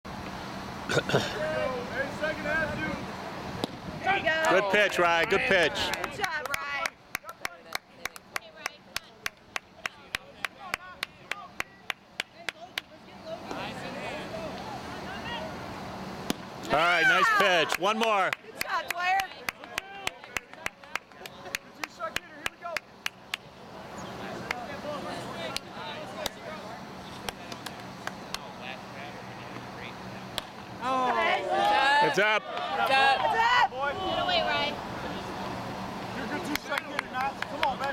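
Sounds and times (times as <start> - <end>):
faint voices talking: 1.1 - 37.9.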